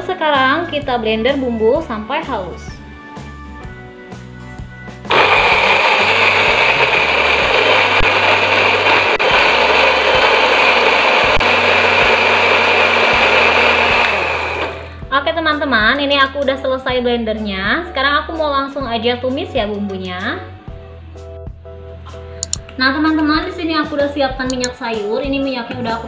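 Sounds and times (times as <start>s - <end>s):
electric blender grinding: 5.1s - 14.9s.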